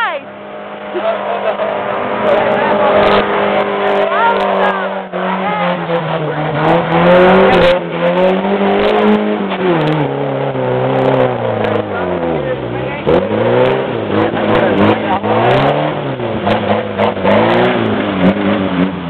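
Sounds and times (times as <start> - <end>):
off-road engine revving: 0.0 - 19.0
tyres churning mud: 0.0 - 19.0.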